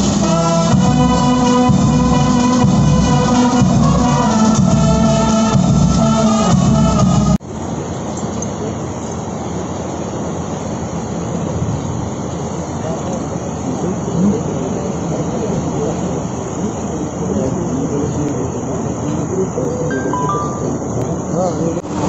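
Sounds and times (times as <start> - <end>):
brass band music: 0.0 - 7.4
outdoor noise: 0.0 - 22.0
faint indistinct voices: 12.6 - 22.0.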